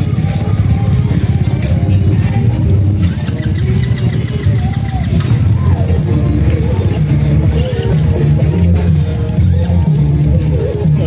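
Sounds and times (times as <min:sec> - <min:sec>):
minibike engines idling: 0:00.0 - 0:11.0.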